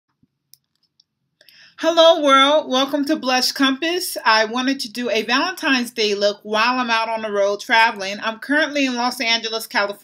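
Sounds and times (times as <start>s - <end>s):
woman speaking: 1.8s - 10.0s.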